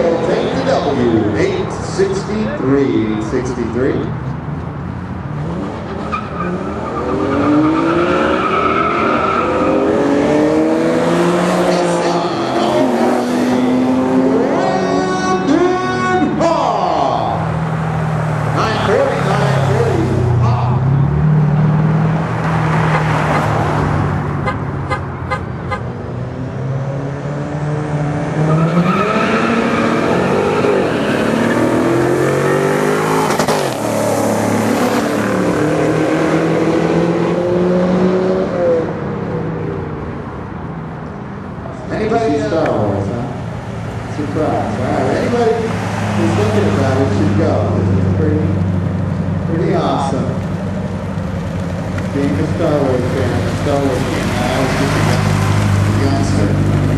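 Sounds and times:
car engines revving hard: 0.0 - 56.9.

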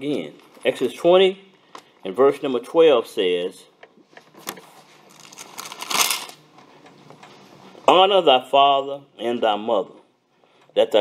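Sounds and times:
paper pages rustling: 4.4 - 6.4.

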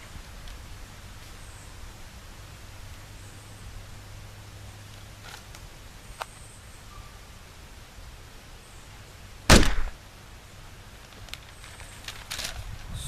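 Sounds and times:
faint background hiss: 0.0 - 13.0
loud sharp impact: 9.5 - 10.0.

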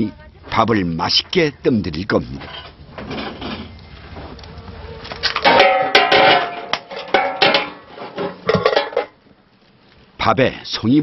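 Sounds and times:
metal pot lid clanking: 5.4 - 9.2.

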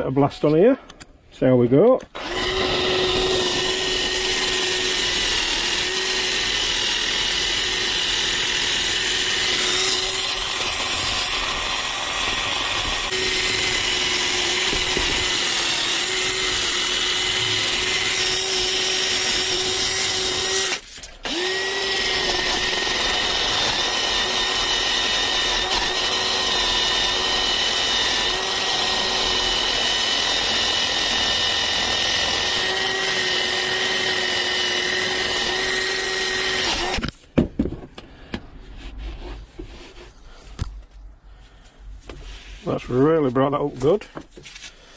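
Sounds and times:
cordless drill cleaning metal: 2.2 - 37.1.

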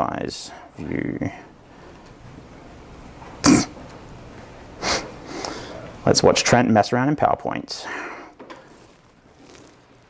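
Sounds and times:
person coughing or sneezing: 3.4 - 3.8.

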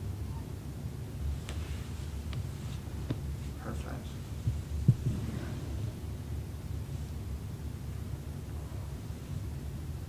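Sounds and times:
steady low hum: 0.0 - 10.0
dull low thumps: 4.2 - 6.4.

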